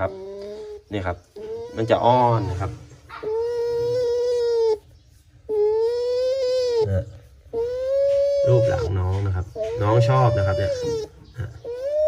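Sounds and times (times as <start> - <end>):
bamboo rat whining call: 0.0 - 12.0.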